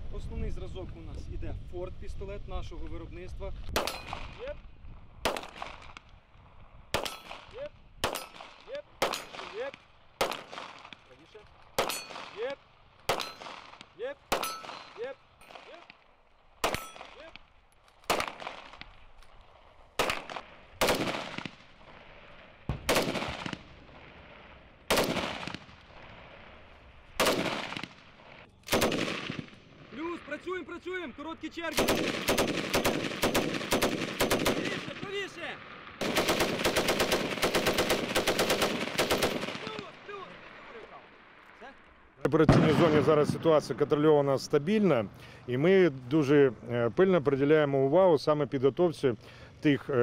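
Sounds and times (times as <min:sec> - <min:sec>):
pistol shots: 0:03.7 - 0:04.5, 0:05.2 - 0:06.1, 0:06.9 - 0:11.1, 0:11.7 - 0:16.0, 0:16.6 - 0:17.4, 0:18.0 - 0:19.0, 0:20.0 - 0:22.0, 0:22.7 - 0:26.0, 0:27.2 - 0:30.0, 0:31.6 - 0:40.8, 0:42.4 - 0:43.9
metallic ring of steel target: 0:03.8 - 0:04.2, 0:11.8 - 0:12.2, 0:14.4 - 0:15.6, 0:16.7 - 0:17.1.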